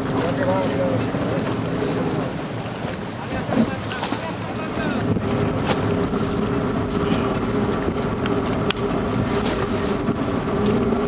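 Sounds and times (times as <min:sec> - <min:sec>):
water rushing along hull: 0:00.0 - 0:11.0
wind buffeting microphone: 0:00.0 - 0:11.0.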